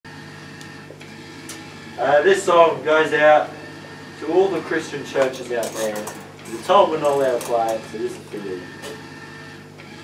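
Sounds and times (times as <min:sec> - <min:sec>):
electrical hum: 0:00.1 - 0:10.0.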